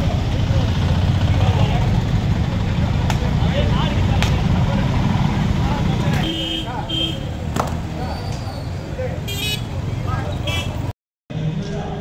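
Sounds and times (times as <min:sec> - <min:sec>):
street noise rumble: 0:00.0 - 0:12.0.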